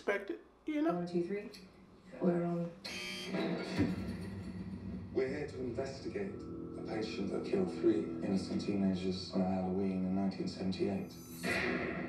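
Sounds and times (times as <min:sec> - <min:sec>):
low steady drone: 0:02.3 - 0:12.0
sudden hit: 0:11.4 - 0:12.0.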